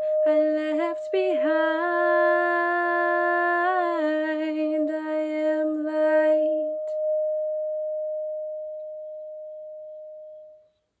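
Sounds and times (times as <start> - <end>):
singing bowl ringing: 0.0 - 11.0.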